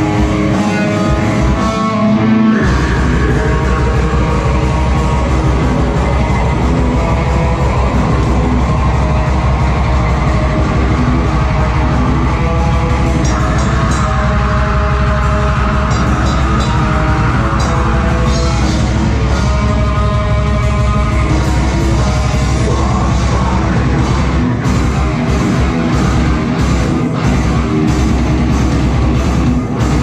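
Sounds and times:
bass guitar: 0:00.0 - 0:30.0
distorted electric guitar: 0:00.0 - 0:30.0
drum kit: 0:00.0 - 0:30.0.

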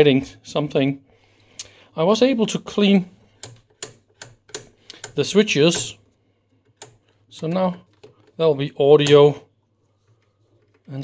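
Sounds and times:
rotary switch clicking: 0:03.4 - 0:06.0, 0:06.7 - 0:07.1.

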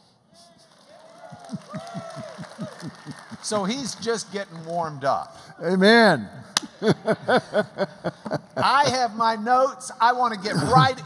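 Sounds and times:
congregation applauding: 0:00.4 - 0:05.5.

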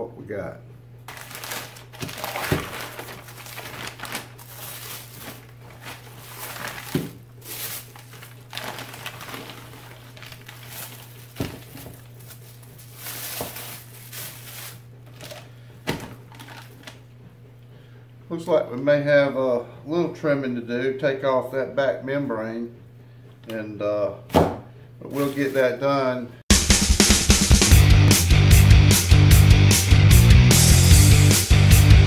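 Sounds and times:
paper crinkling and rustling: 0:01.1 - 0:17.0, 0:25.2 - 0:25.7
package knocking on countertop: 0:06.9 - 0:07.2, 0:11.4 - 0:12.0.

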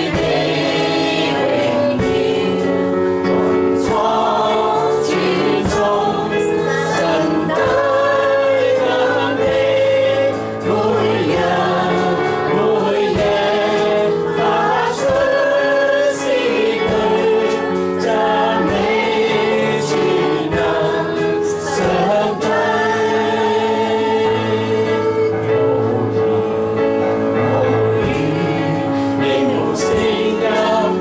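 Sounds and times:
electronic keyboard accompaniment: 0:00.0 - 0:31.0.

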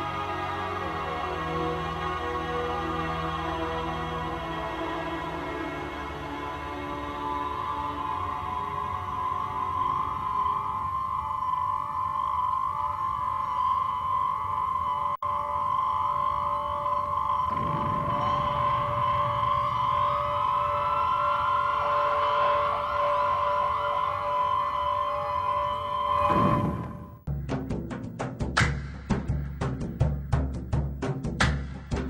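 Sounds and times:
siren-like electronic tones: 0:08.7 - 0:27.3
rising electronic tone: 0:12.2 - 0:27.3.

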